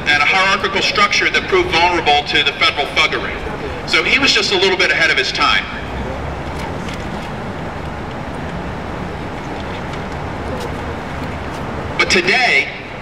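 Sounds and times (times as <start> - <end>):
urban traffic rumble: 0.0 - 13.0.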